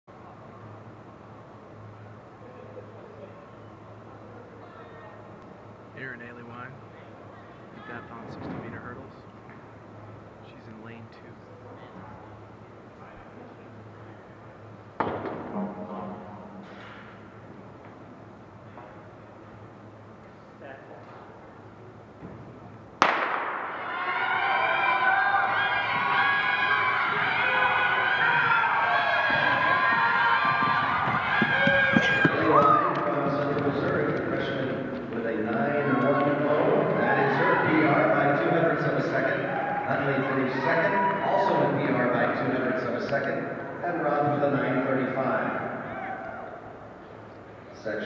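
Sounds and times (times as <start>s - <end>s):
starting gun crack: 23.0s - 23.8s
loud call: 23.0s - 33.8s
spectators cheering and shouting: 23.5s - 43.8s
indistinct voices echoing: 24.9s - 47.3s.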